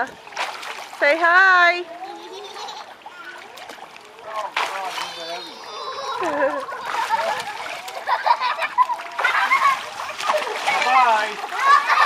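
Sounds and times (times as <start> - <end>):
water splashing in a pool: 0.0 - 12.0.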